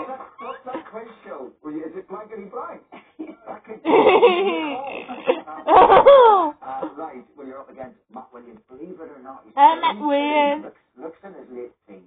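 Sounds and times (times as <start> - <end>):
quiet talk: 0.0 - 12.0
person laughing loudly: 3.0 - 6.6.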